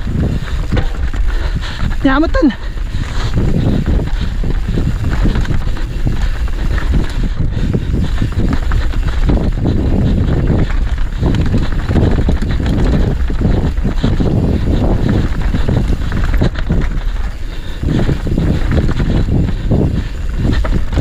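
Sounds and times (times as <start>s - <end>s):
tyre rumble on dirt: 0.0s - 2.2s, 2.8s - 21.0s
bike knocks and rattles: 0.0s - 21.0s
wind buffeting microphone: 0.0s - 21.0s.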